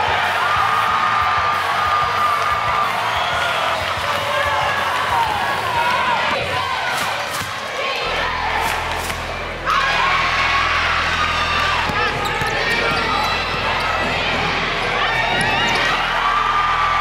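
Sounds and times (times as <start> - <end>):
voices and shouts: 0.0 - 17.0
basketball bouncing on court: 11.7 - 16.0.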